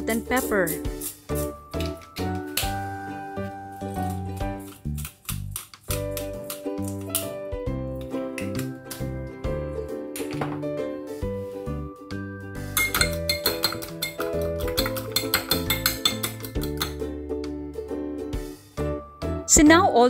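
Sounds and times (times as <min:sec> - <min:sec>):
fork clinking against ceramic bowl: 0:12.8 - 0:17.0.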